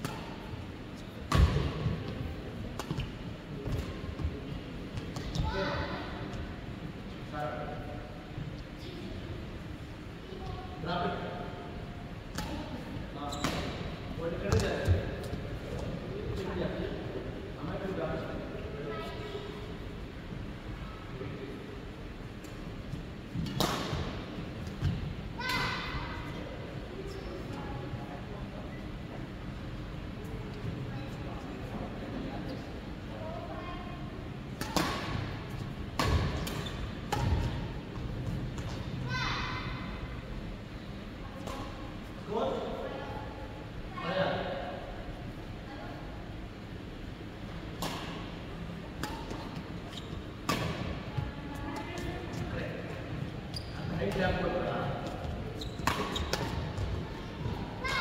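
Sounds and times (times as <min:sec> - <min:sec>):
brief squeak: 0:13.3 - 0:13.7
rackets hitting shuttlecock: 0:34.6 - 0:35.3, 0:50.4 - 0:51.0, 0:55.8 - 0:56.9.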